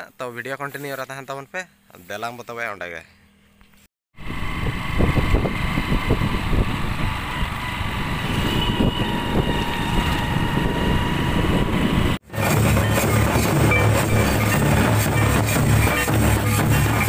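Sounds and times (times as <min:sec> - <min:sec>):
wind noise on microphone: 0:04.2 - 0:13.4
motorbike engine running: 0:04.2 - 0:17.0.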